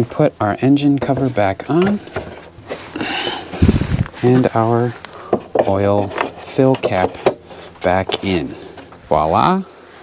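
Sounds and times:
plastic cover scraping and rustling: 1.0s - 9.3s.

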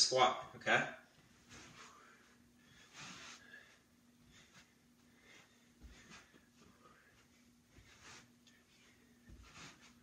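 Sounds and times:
low steady hum: 0.0s - 10.0s
man breathing while exercising: 1.2s - 10.0s.

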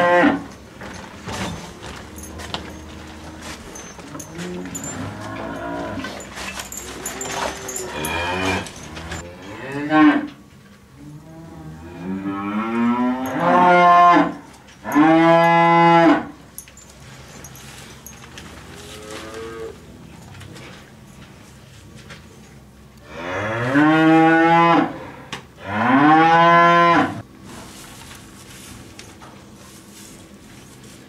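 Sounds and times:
cows mooing: 1.8s - 10.3s, 11.0s - 16.3s, 23.0s - 27.2s.

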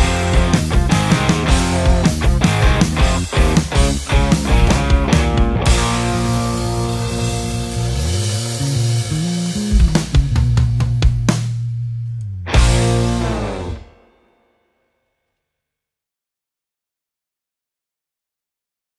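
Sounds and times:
live rock band playing: 0.0s - 11.6s, 12.5s - 14.0s
bass sliding up and down: 0.0s - 13.9s.

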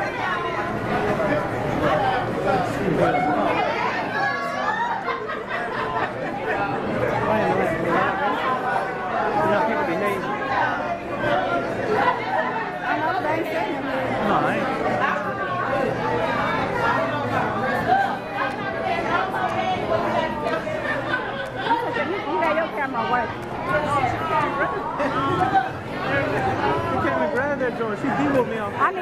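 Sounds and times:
crowd chatter in large hall: 0.0s - 29.0s.

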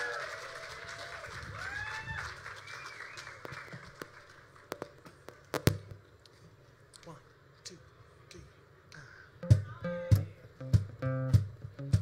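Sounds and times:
rising whoops: 0.0s - 3.2s
audience applauding and cheering: 0.0s - 4.9s
sharp clicks and knocks: 4.7s - 6.0s.

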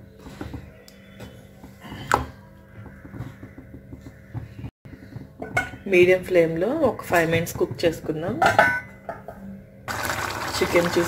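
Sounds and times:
curry simmering: 9.9s - 11.0s.

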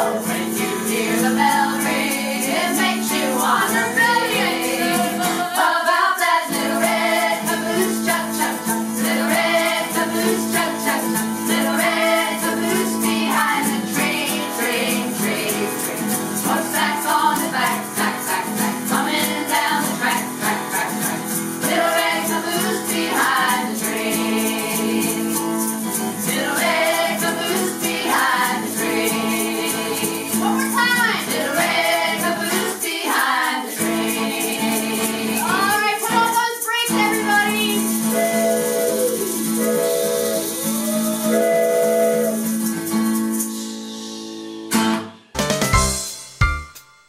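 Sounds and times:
group singing in unison: 0.0s - 35.8s, 37.9s - 42.4s
egg shakers: 0.0s - 43.6s
strummed acoustic guitar: 0.0s - 46.7s.

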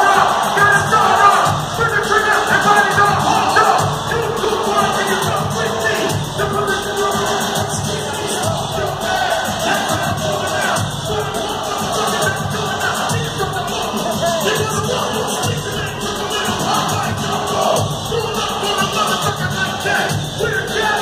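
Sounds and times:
crowd cheering: 0.0s - 21.0s
crowd singing along: 0.0s - 21.0s
live hip hop music over pa: 0.0s - 21.0s.

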